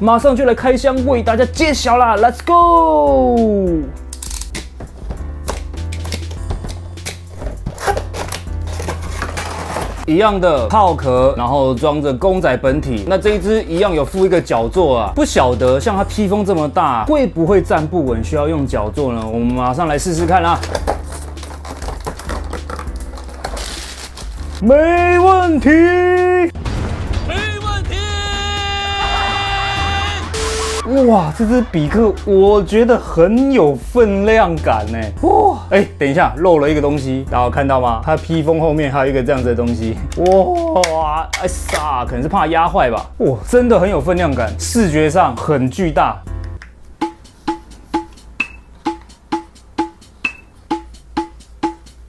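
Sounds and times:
background music with bass: 0.0s - 52.0s
cardboard box being opened: 6.0s - 10.1s, 20.6s - 24.6s
man shouting: 24.6s - 26.5s, 27.3s - 31.2s.

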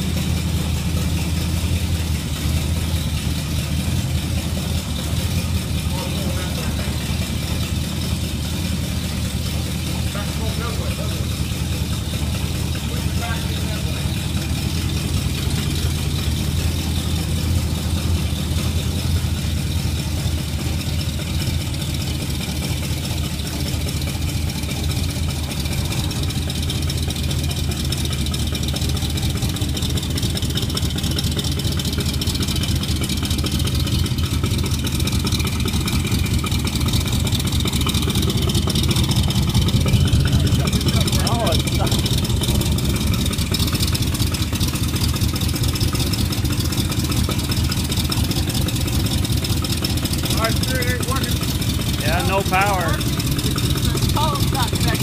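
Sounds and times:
car engine idling burble: 0.0s - 55.0s.

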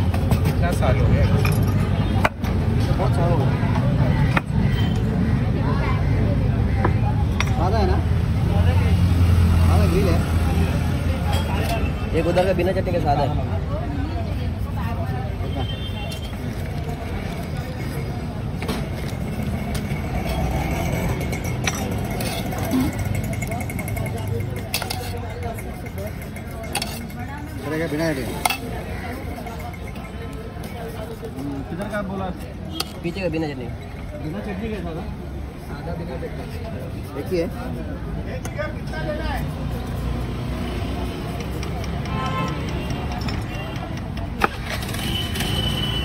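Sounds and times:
low rumble of street traffic: 0.0s - 46.0s.

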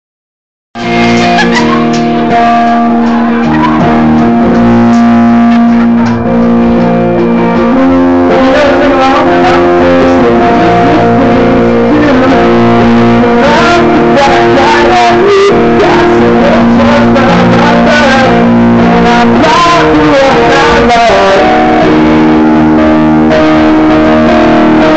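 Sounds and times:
live rock band playing: 0.8s - 24.9s.

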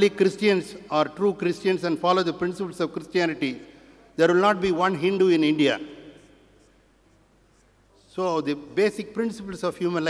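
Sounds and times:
man speaking over amplification: 0.0s - 6.5s, 7.9s - 10.0s.

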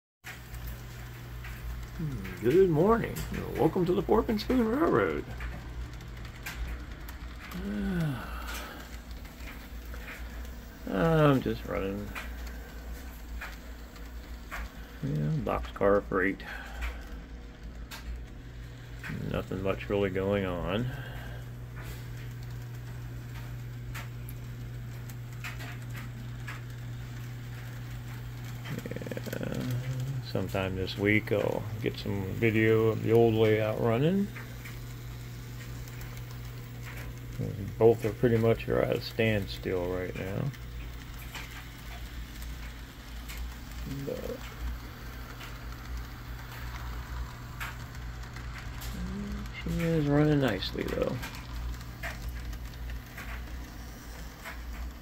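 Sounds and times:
faint clicks: 0.3s - 55.0s
model train humming on track: 0.3s - 55.0s.

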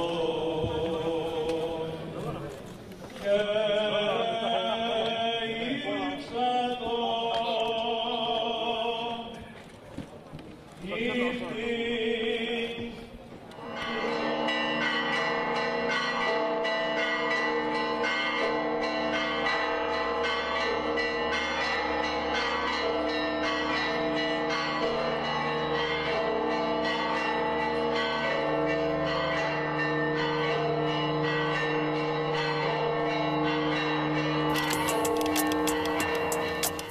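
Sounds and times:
church bells pealing: 13.5s - 36.9s.

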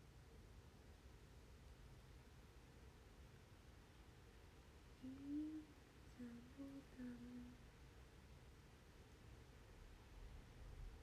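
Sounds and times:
young woman humming softly: 5.0s - 7.7s.

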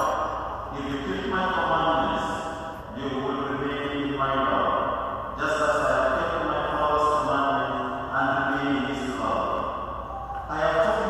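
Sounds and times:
man chanting a prayer: 0.7s - 9.5s, 10.5s - 11.0s.

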